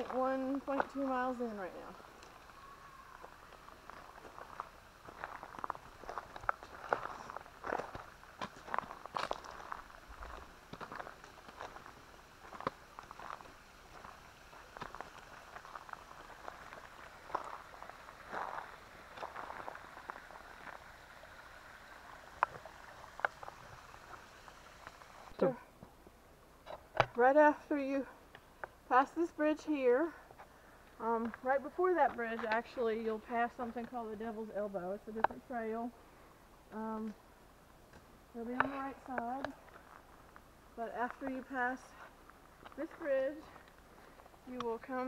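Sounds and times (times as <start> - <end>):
footsteps on gravel: 0.0 - 21.5, 38.4 - 45.0.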